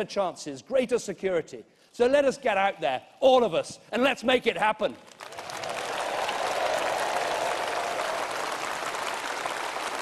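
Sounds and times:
large audience applauding: 5.1 - 10.0
cheering voices: 5.4 - 10.0.

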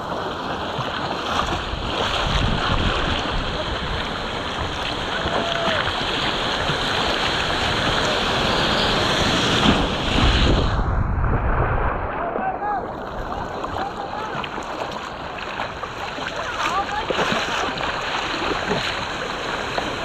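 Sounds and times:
wind noise on microphone: 0.0 - 14.0
surf: 0.0 - 20.0
water splashing against surfboard: 0.0 - 20.0.

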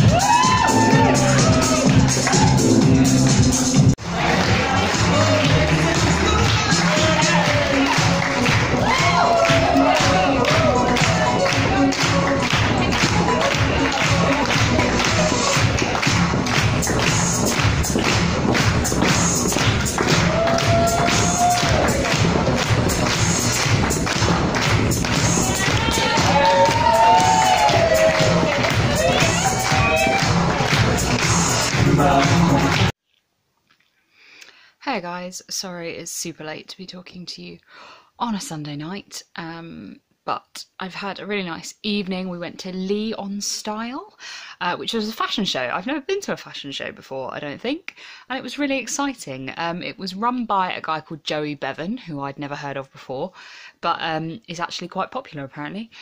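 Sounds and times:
pop music over sound system: 0.0 - 32.9.

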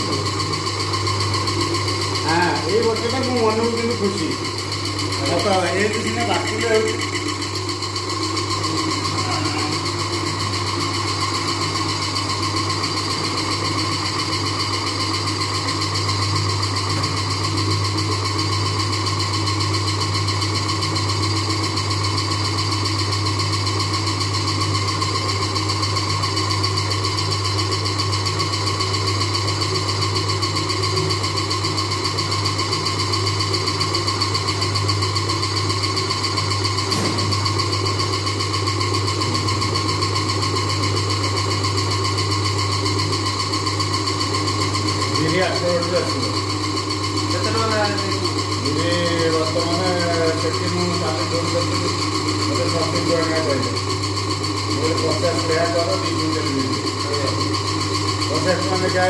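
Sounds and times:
wet grinder motor humming and whining: 0.0 - 59.0.

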